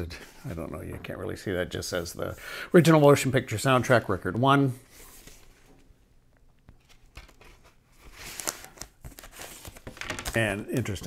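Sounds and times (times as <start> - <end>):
paper sleeve rustling and crinkling: 6.8 - 10.4.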